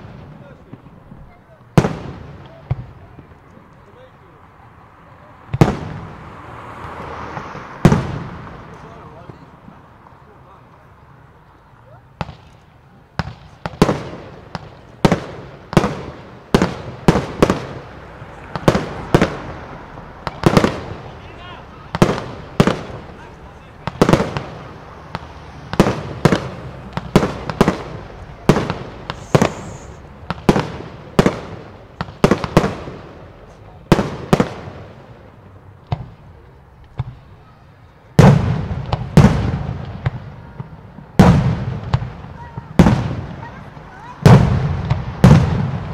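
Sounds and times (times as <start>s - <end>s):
fireworks bursting: 0.0s - 4.2s, 5.5s - 10.7s, 12.1s - 45.9s.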